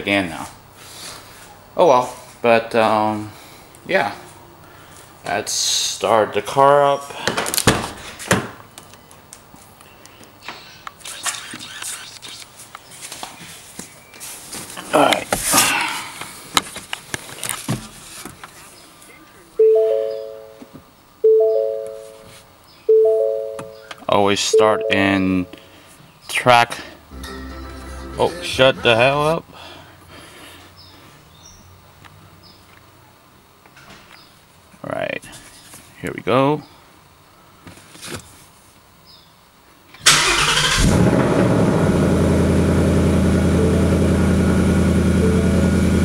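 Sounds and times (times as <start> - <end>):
car dashboard warning chime: 19.6 - 20.5, 21.3 - 22.1, 22.9 - 23.8, 24.6 - 25.2, 45.0 - 46.0
faint high chirp: 19.6 - 20.6.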